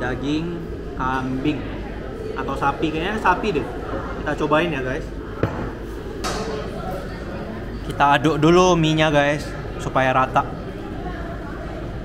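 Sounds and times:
faint voices: 0.0 - 12.0
restaurant room noise: 0.0 - 12.0.

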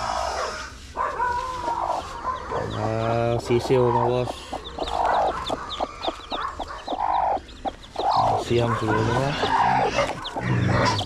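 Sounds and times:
chicks peeping: 0.0 - 11.0
hen clucking: 0.0 - 11.0.

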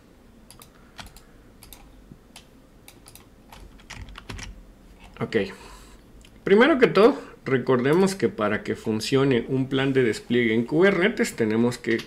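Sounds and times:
keyboard typing: 0.5 - 5.2.

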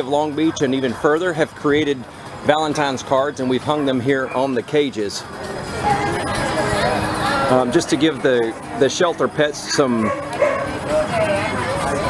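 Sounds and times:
dogs barking: 9.7 - 11.0.

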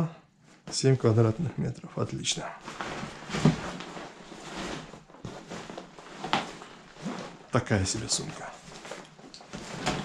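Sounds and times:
fabric bag rustling on cardboard: 2.6 - 10.0.

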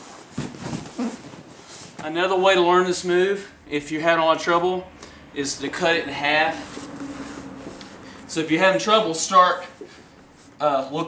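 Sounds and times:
feet against padded wall: 0.0 - 2.3
cloth rustling: 0.0 - 2.4, 6.5 - 8.4
body thumping on a mat: 0.2 - 2.1.

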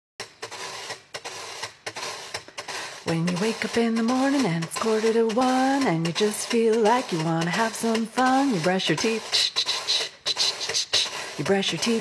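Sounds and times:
metal washboard scraping: 0.2 - 12.0.

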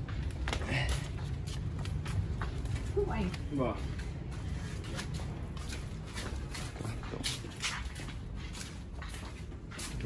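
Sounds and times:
footsteps scuffing on concrete: 0.0 - 10.0.

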